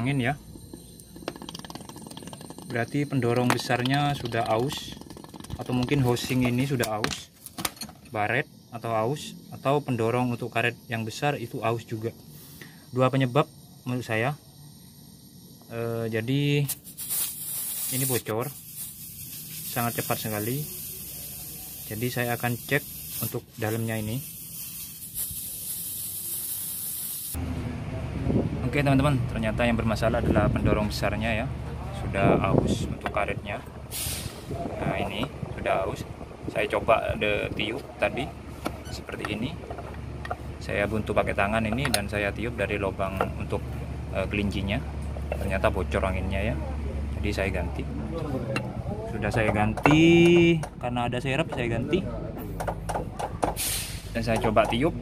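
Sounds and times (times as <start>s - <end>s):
compressed air hissing: 0.0s - 7.5s, 8.4s - 27.4s, 32.5s - 46.0s, 48.0s - 55.0s
breathy air hiss: 8.4s - 27.4s, 33.8s - 34.7s, 53.6s - 54.3s.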